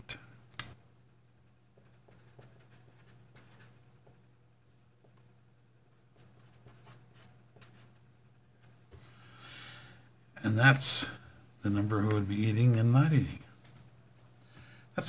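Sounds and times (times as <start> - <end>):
steady low hum: 0.0 - 15.0
pencil scratching on paper: 1.8 - 3.8, 6.2 - 8.0.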